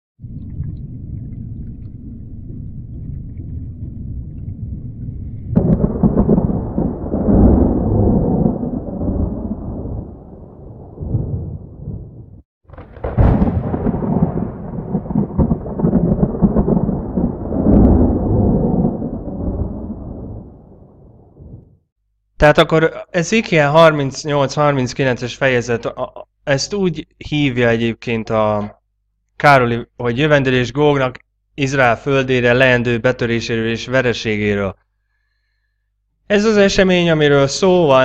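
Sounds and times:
rolling thunder: 0:00.2 - 0:21.8
thunder crack: 0:00.2 - 0:21.8.

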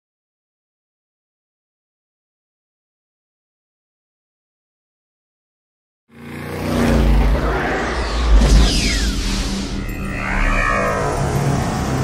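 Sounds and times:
engine rev sound effect: 0:06.1 - 0:12.0
electronic music: 0:07.1 - 0:12.0.

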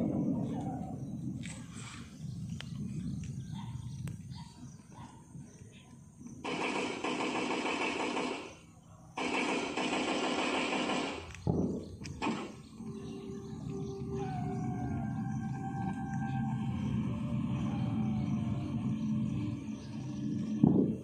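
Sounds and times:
harsh bursts of noise: 0:06.4 - 0:11.4
soft ambient music: 0:12.6 - 0:21.0.

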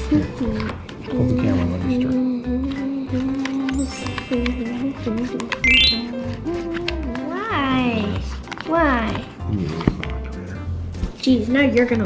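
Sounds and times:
high-pitched vocal calls: 0:05.6 - 0:06.3.

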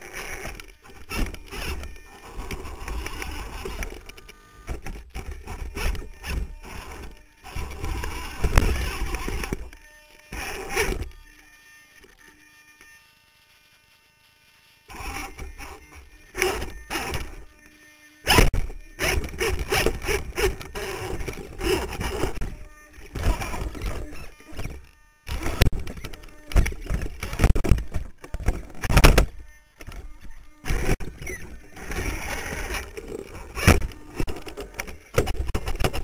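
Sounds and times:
electric motors whirring: 0:00.0 - 0:36.0.

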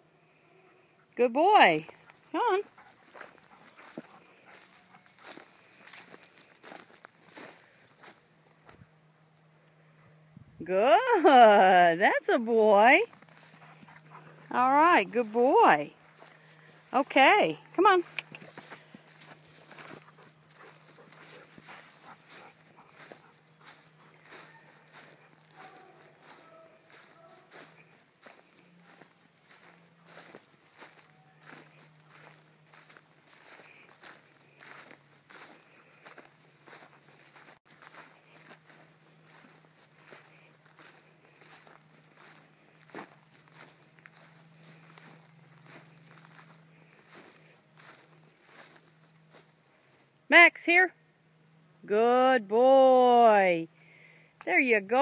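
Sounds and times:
footsteps crunching on dry grass: 0:01.4 - 0:09.6, 0:10.2 - 0:50.3.

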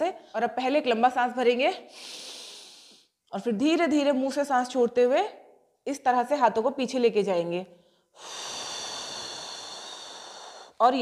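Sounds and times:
woman exhaling slowly: 0:08.2 - 0:10.8.

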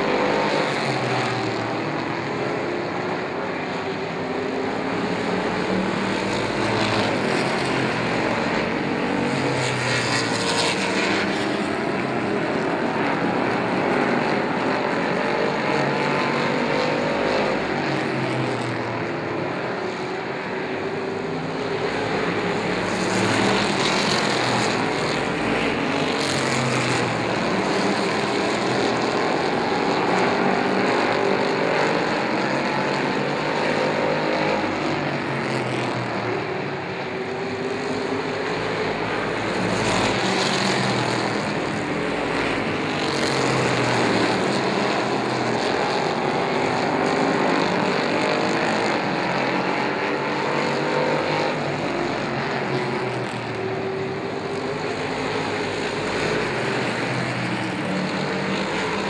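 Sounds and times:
race car engines passing: 0:00.0 - 0:59.0.

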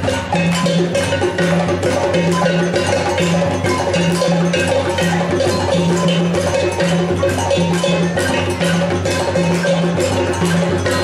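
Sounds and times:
drum ensemble playing: 0:00.0 - 0:11.0
ringing metal bell: 0:00.0 - 0:11.0.

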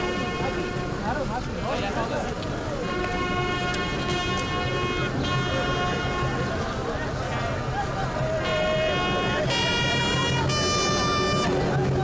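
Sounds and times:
crowd voices: 0:00.0 - 0:12.0
bugle call: 0:08.4 - 0:11.6.

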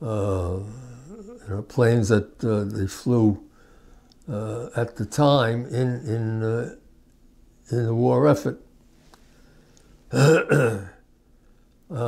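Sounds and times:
man coughing: 0:10.1 - 0:11.0.

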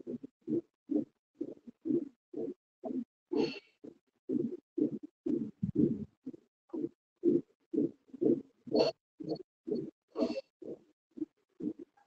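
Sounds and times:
muffled pulses: 0:00.0 - 0:12.0.

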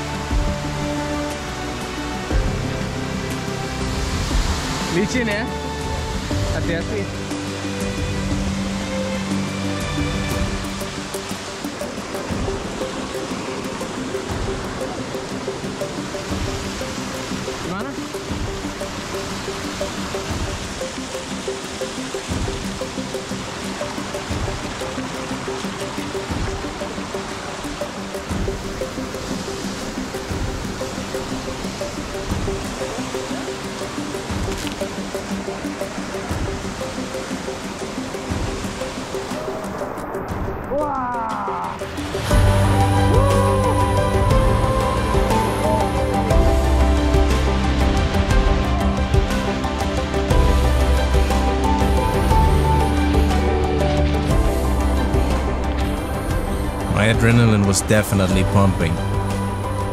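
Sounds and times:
music of sustained notes: 0:00.0 - 0:40.8, 0:41.6 - 0:59.9
waterfall rushing over rocks: 0:00.0 - 0:59.9.

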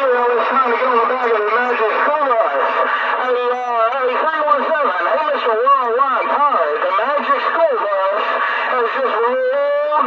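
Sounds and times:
voices over radio speaker: 0:00.0 - 0:10.0.

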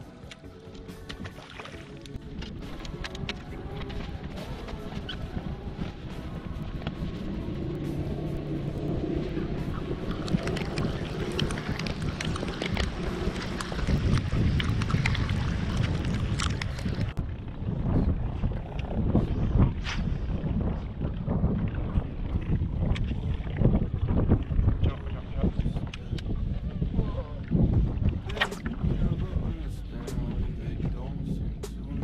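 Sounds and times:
water around boat: 0:00.0 - 0:32.0
wind buffeting microphone: 0:01.8 - 0:32.0.

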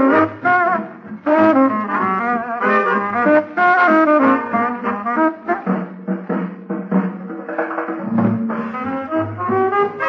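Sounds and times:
dance orchestra playing foxtrot: 0:00.0 - 0:10.0.

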